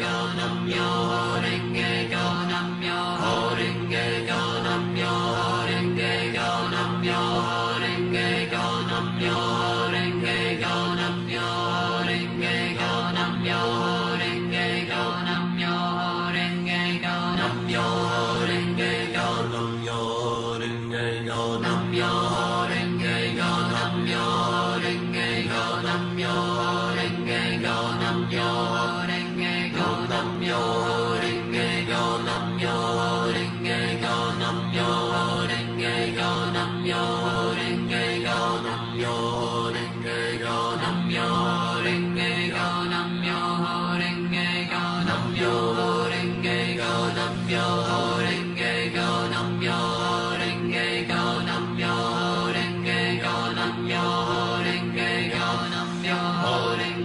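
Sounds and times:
voice chanting on one pitch: 0.0 - 57.0.

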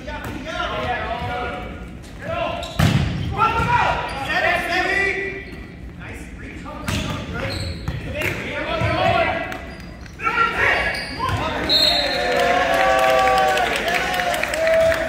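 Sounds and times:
volleyball strikes: 2.6 - 3.8.

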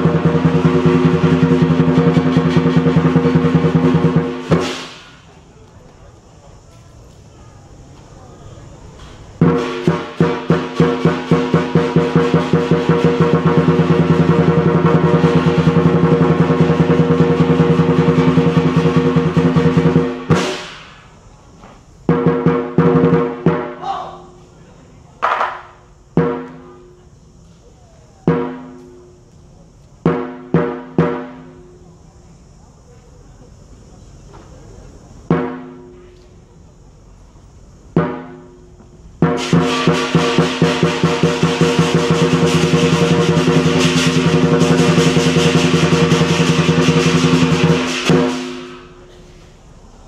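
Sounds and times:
cymbal crash: 0.0 - 5.3, 9.4 - 21.1, 39.2 - 49.2
drum roll and strokes: 0.0 - 5.3, 9.4 - 21.0, 22.1 - 23.8, 28.2 - 29.1, 30.0 - 31.6, 39.2 - 49.0.

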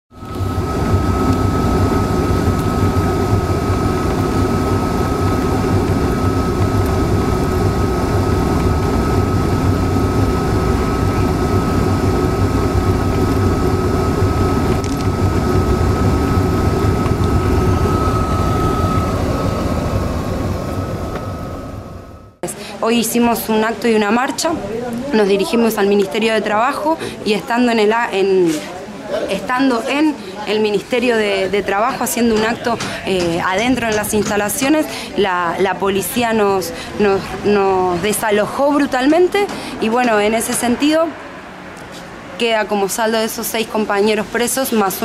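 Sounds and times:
thin steady whine: 0.1 - 45.0.

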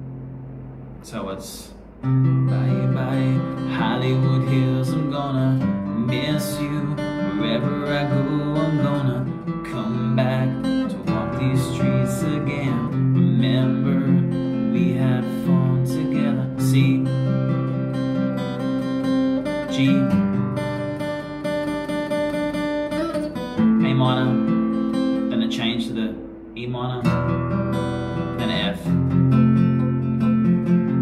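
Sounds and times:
acoustic guitar strumming chords: 0.0 - 31.0.

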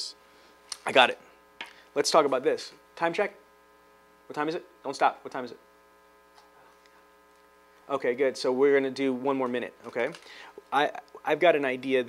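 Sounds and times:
low electrical hum: 0.0 - 12.0
man speaking: 0.8 - 1.3, 2.0 - 3.4, 4.3 - 5.6, 7.9 - 12.0.

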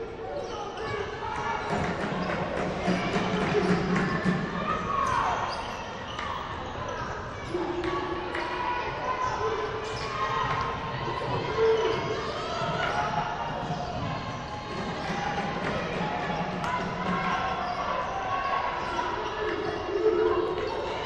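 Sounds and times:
voices calling out: 0.0 - 21.0.

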